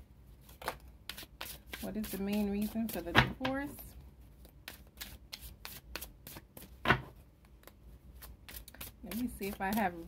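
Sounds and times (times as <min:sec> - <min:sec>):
cards being shuffled: 0:00.4 - 0:03.3, 0:07.6 - 0:10.0.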